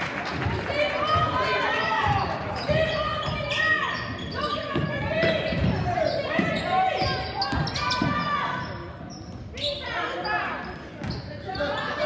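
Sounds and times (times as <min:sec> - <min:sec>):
voices in gym hall: 0:00.0 - 0:12.0.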